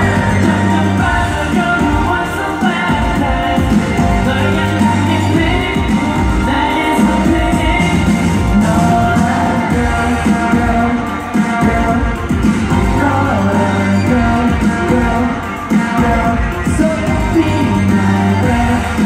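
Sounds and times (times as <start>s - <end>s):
amplified pop backing music: 0.0s - 19.0s
group singing pop: 0.0s - 19.0s.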